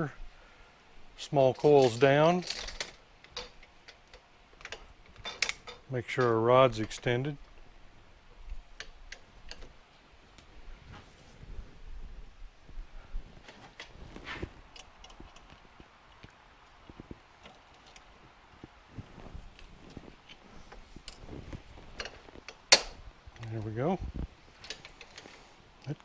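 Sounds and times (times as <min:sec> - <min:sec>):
metallic clicks and clinks: 0:01.5 - 0:07.0.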